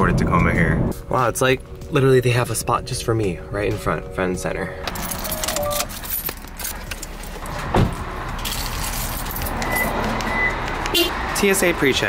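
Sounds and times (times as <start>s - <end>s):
rattling jingling handling: 4.8s - 7.4s, 8.4s - 9.6s
car door thud: 7.6s - 8.0s.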